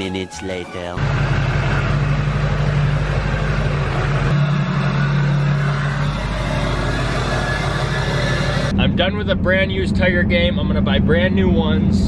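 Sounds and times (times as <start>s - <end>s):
diesel engine idling: 0.0s - 10.2s.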